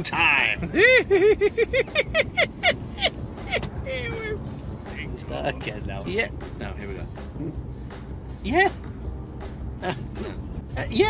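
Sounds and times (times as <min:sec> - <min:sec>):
car cabin hum: 0:00.0 - 0:07.0
person laughing: 0:00.5 - 0:04.4, 0:09.8 - 0:10.4.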